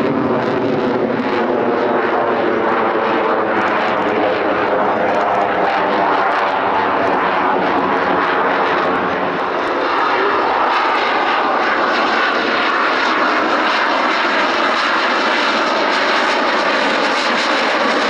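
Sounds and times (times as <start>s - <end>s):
fighter jet engine roar: 0.0s - 18.0s.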